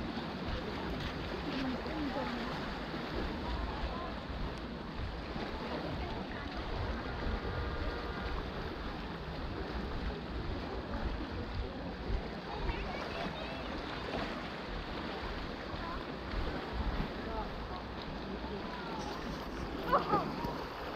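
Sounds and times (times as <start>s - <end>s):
wind on microphone: 0.0s - 17.4s
faint distant voices: 0.0s - 20.9s
sea wash: 0.0s - 20.9s.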